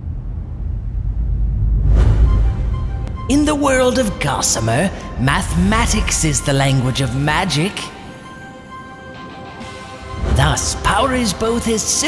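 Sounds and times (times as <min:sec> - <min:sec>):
deep low rumble: 0:00.0 - 0:04.1.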